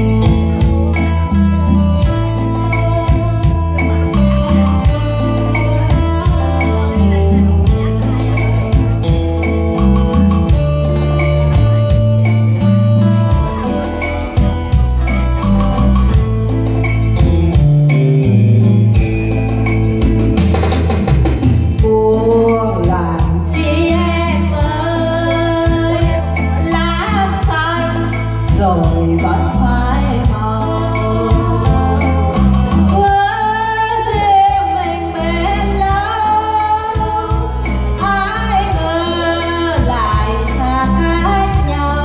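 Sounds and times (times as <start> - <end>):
bass line: 0.0 - 42.0
keyboard melody: 0.0 - 42.0
plucked guitar-like chords: 0.0 - 42.0
steady drum beat: 13.4 - 22.0.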